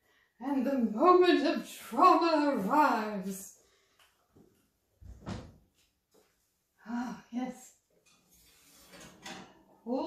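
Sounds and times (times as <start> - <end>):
pan scraping on oven rack: 8.3 - 9.7.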